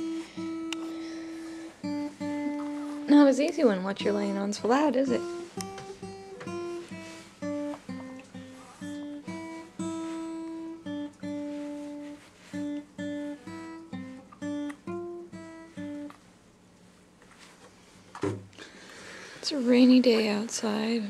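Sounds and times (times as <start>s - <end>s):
acoustic guitar slow melody: 0.0s - 21.0s.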